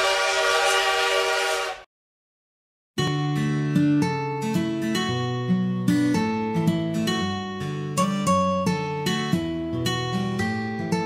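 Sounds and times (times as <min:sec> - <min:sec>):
steam train whistle: 0:00.0 - 0:01.8.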